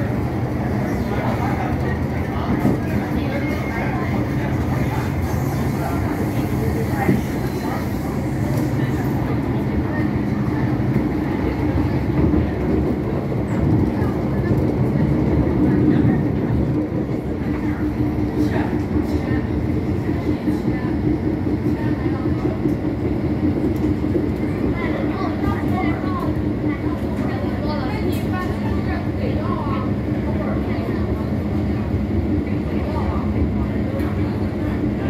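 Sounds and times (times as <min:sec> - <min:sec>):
train wheels rumbling on rail: 0:00.0 - 0:35.0.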